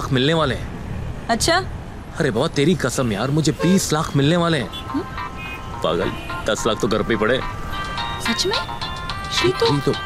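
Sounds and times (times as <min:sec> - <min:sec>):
phone ringtone electronic melody: 0:04.9 - 0:10.0.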